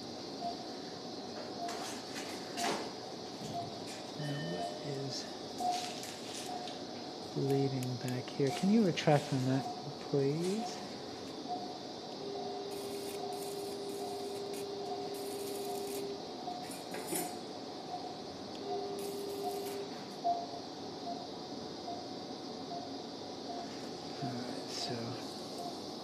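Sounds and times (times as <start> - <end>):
cautery unit activation tone: 0.0 - 26.0
patient monitor beeps: 0.4 - 0.7, 1.6 - 1.9, 2.5 - 2.8, 3.4 - 25.9
hiss of cauterizing: 12.7 - 16.2, 19.0 - 19.8.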